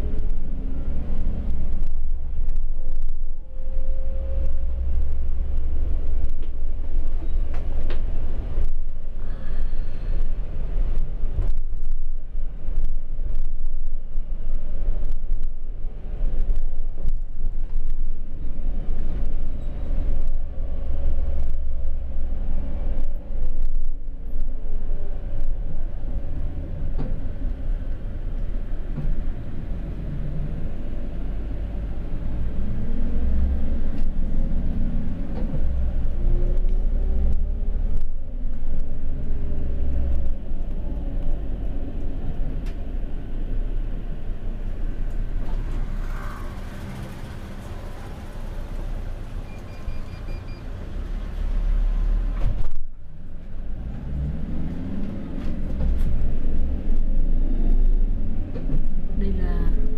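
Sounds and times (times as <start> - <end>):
engine and road rumble: 0.0 - 59.9.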